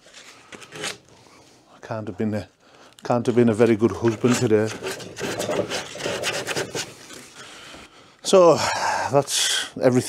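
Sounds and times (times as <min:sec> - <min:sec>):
hand sanding wood: 0:03.6 - 0:07.2.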